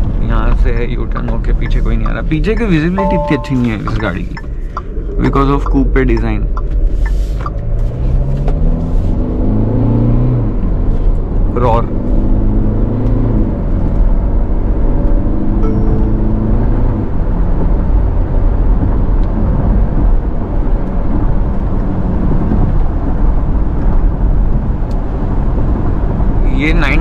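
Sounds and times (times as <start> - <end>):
road tyre and engine drone: 0.0 - 27.0.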